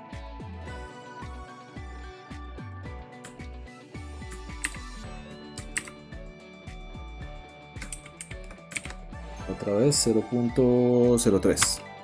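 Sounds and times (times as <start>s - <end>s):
faint background music: 0.0s - 12.0s
keyboard and mouse clicking: 3.2s - 3.5s, 4.3s - 4.9s, 5.6s - 6.0s, 7.8s - 9.0s, 11.5s - 12.0s.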